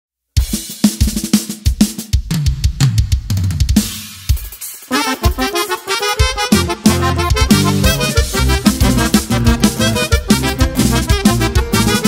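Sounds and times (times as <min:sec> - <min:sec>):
drum kit hits: 0:00.4 - 0:12.0
bass line: 0:05.0 - 0:12.0.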